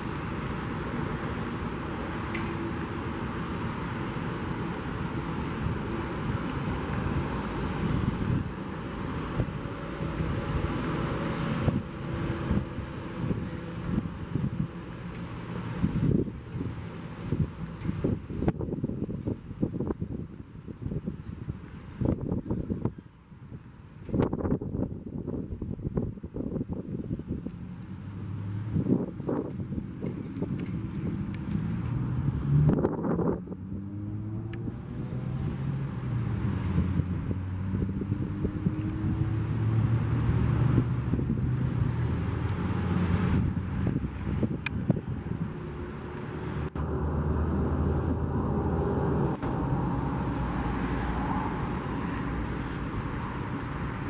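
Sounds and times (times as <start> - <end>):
vehicle engines humming: 0.0 - 54.0
wind rumbling on microphone: 0.0 - 54.0.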